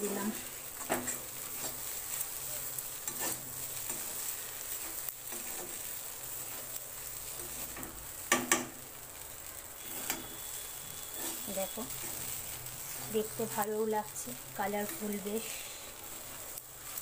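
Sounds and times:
frying sizzle: 0.0 - 17.0
metal spatula scraping pan: 0.3 - 2.0, 3.0 - 5.8, 9.8 - 13.4.

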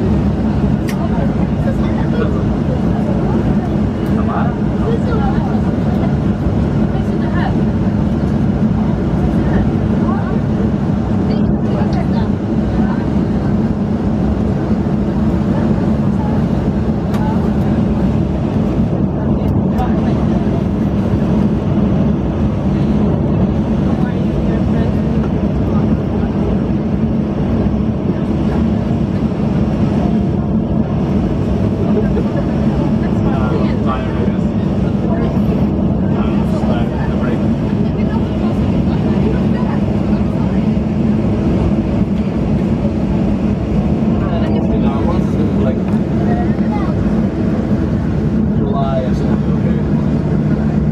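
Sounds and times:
jet engines humming in cabin: 0.0 - 50.9.

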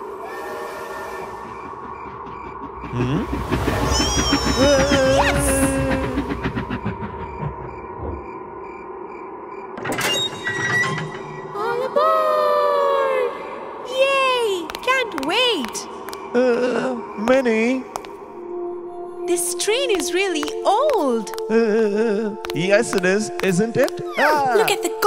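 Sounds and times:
background music: 0.0 - 6.9, 11.0 - 25.0
cartoon train rumble: 0.0 - 8.6
high falling squeal: 0.0 - 11.6.

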